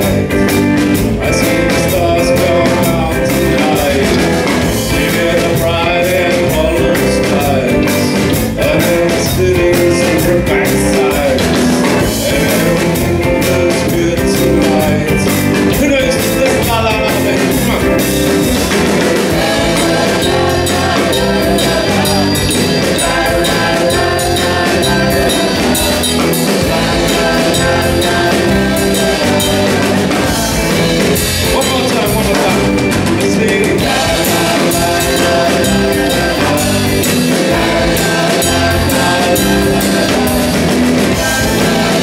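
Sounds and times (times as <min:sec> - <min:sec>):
bass guitar: 0:00.0 - 0:42.0
drum kit steady beat: 0:00.0 - 0:42.0
electric guitar melody: 0:00.0 - 0:42.0
live rock band playing: 0:00.0 - 0:42.0.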